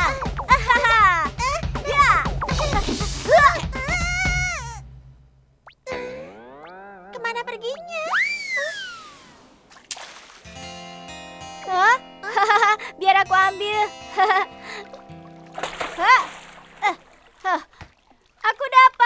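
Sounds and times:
cartoon boing effects: 5.6 - 9.4
falling whistle-like glide: 8.0 - 9.5
soft background music chords: 10.5 - 17.4.

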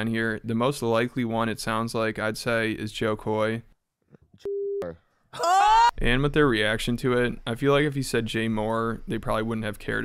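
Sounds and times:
censor bleep: 4.4 - 4.9.

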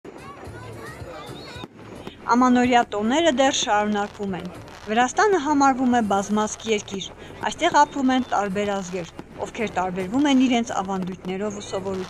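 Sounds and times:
background music: 0.1 - 12.0
fireworks exploding: 0.1 - 12.0.

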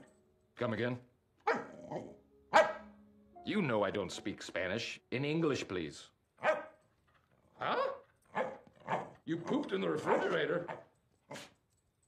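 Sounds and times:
small dog barking: 1.4 - 2.8, 6.4 - 6.8, 7.6 - 9.2, 10.0 - 11.5.

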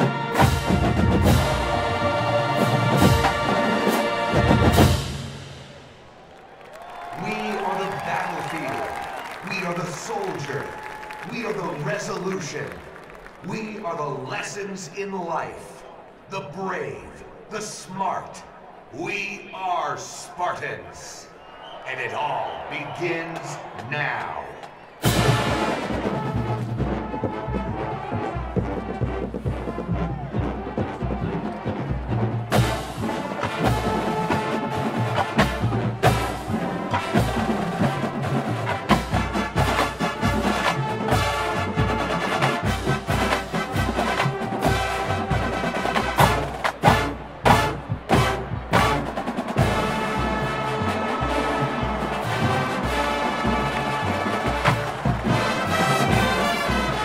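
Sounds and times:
drums keeping steady beat: 0.0 - 5.6, 23.4 - 57.0
marching band playing: 0.0 - 15.6, 21.8 - 57.0.

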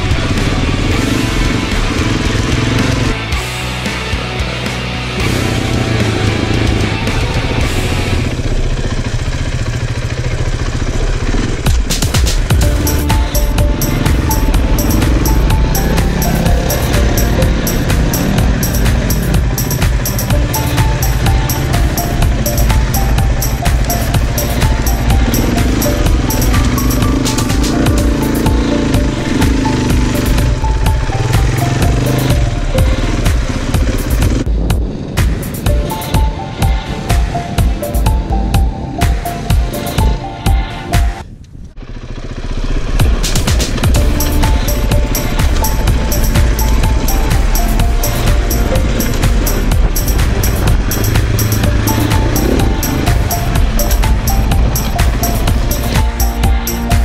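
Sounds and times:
rock music: 0.0 - 8.4, 11.6 - 41.2, 43.1 - 57.0
dirt bike engine: 0.0 - 40.2, 40.8 - 57.0
steady drum beat: 11.7 - 41.2, 43.0 - 57.0.

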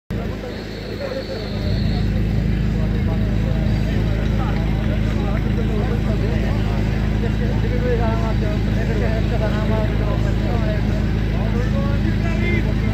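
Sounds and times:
engine running steadily: 0.1 - 12.9
people talking: 0.1 - 12.9.

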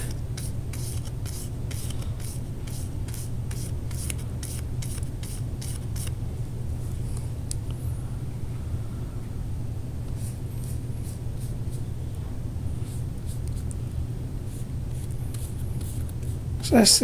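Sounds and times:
steady low hum: 0.0 - 17.0
paintbrush brushing on cardboard: 12.8 - 13.6.

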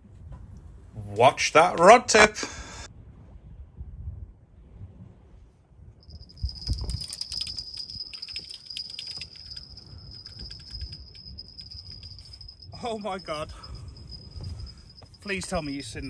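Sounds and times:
fishing reel ratcheting: 6.2 - 12.7.

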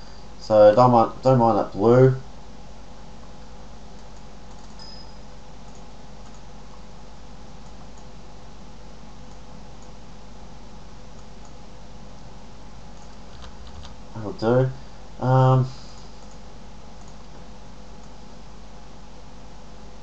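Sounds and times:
faint electrical hum: 0.0 - 20.0
microphone hiss: 0.0 - 20.0.

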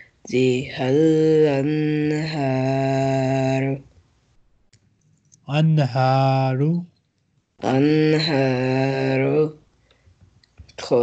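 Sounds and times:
man chanting recitation: 5.4 - 6.9.

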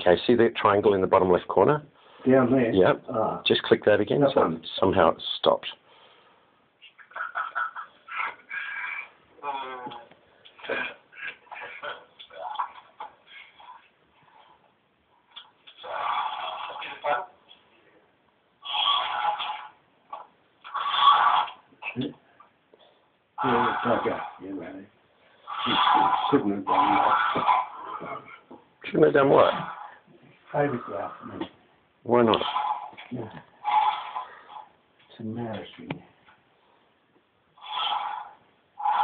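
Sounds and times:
snort of laughter: 7.0 - 9.1.

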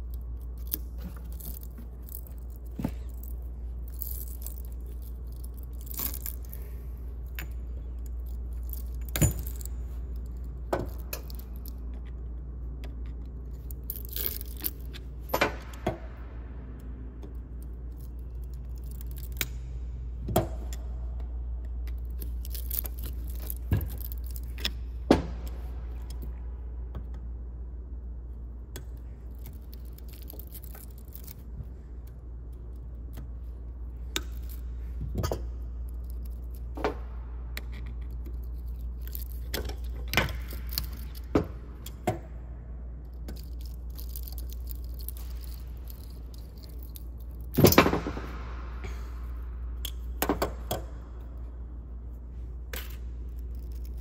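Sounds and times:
steady low hum: 0.0 - 54.0
metallic clicks and clinks: 43.0 - 48.0.

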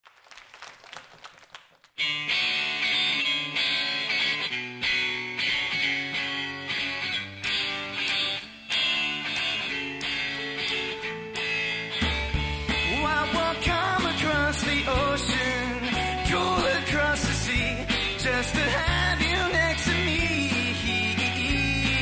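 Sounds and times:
electric guitars playing: 2.0 - 22.0.

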